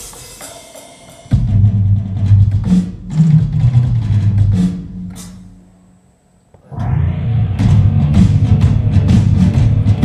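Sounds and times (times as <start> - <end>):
drum kit struck with sticks: 0.0 - 5.8, 6.6 - 10.0
rock music: 6.7 - 10.0.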